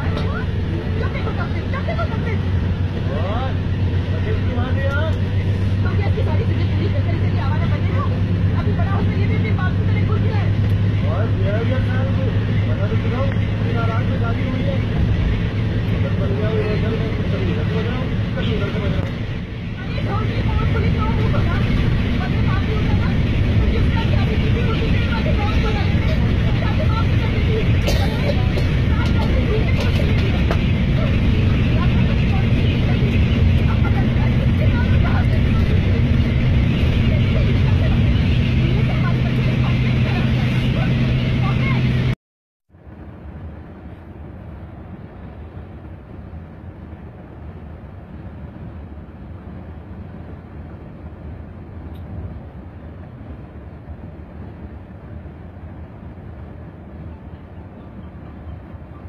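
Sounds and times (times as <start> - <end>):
voices talking: 0.0 - 42.2
coach engine drone: 0.0 - 59.0.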